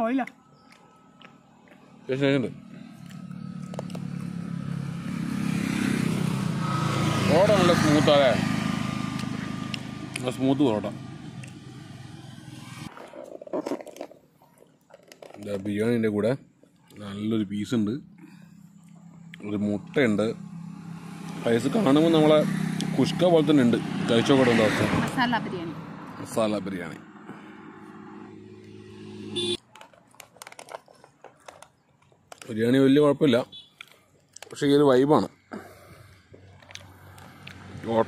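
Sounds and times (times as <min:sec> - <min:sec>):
vehicle engine rumble: 0:00.0 - 0:38.0
handling clicks and rustles: 0:12.9 - 0:17.1, 0:29.6 - 0:32.9.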